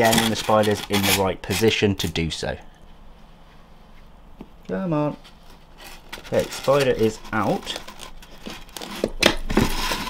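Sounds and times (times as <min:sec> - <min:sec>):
plastic cup crinkling: 0:00.0 - 0:02.2, 0:05.8 - 0:10.0.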